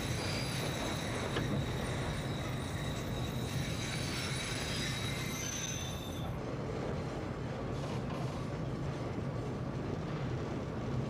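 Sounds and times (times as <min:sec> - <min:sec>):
high-pitched wheel squeal: 0:00.0 - 0:06.3
subway train wheels rumbling: 0:00.0 - 0:11.0.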